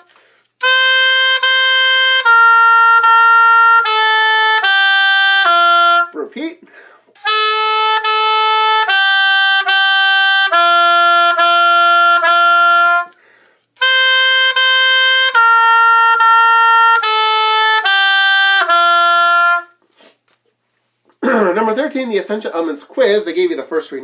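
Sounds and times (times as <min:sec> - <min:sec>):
oboe playing held notes: 0:00.0 - 0:06.2, 0:07.2 - 0:13.2, 0:13.8 - 0:19.8.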